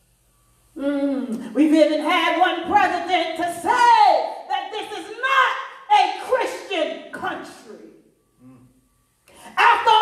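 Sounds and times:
woman preaching over loudspeakers: 1.4 - 8.0, 9.5 - 10.0.

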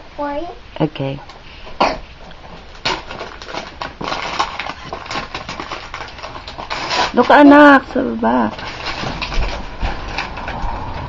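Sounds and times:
wrapping paper tearing and crumpling: 2.8 - 10.9.

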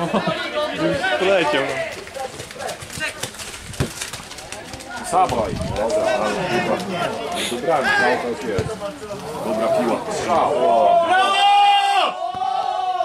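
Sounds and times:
men shouting and cheering: 0.0 - 3.2, 4.6 - 13.0.

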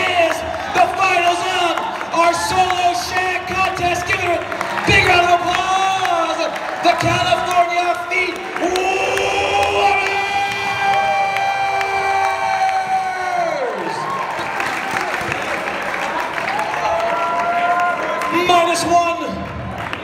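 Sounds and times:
audience cheering and applauding: 0.0 - 20.0.

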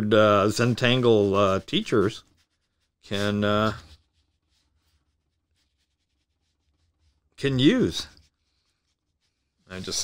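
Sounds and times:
paintbrush strokes on paper: 0.0 - 10.0.

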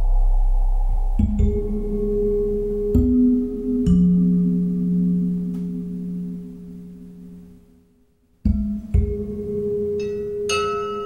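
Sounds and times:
strong deep note: 0.0 - 7.9
slow ambient music: 0.0 - 11.0.

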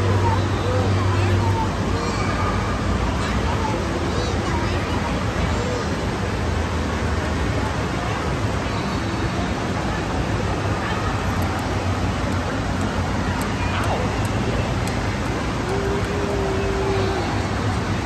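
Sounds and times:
faint far-off voices: 0.0 - 18.0.

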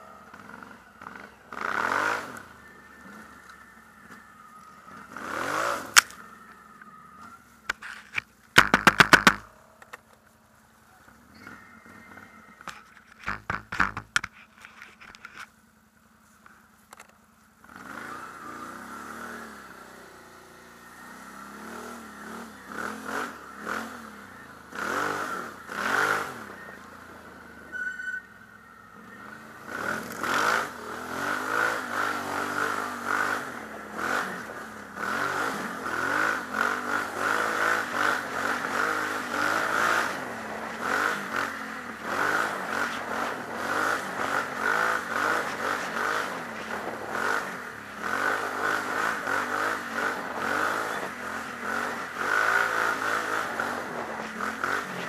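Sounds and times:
atv engine revving: 0.0 - 7.8, 8.6 - 10.0, 11.0 - 15.5, 16.9 - 55.0
knocks and clatter: 8.1 - 10.0, 12.6 - 15.5.

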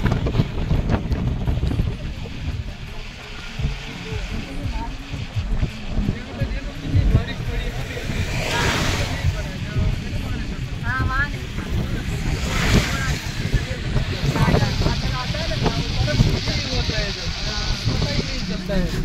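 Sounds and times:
passengers talking faintly: 0.0 - 19.0
road and engine rumble: 0.0 - 19.0.

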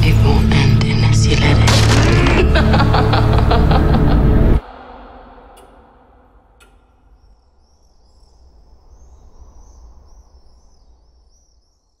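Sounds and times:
small birds chirping: 5.5 - 12.0.

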